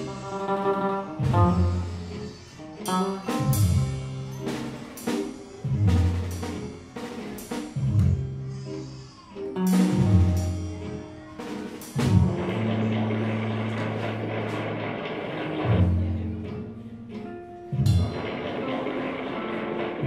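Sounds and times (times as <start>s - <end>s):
cymbals and drums: 0.0s - 8.8s, 9.5s - 16.6s, 17.7s - 20.0s
keyboard heavy low notes: 0.0s - 20.0s.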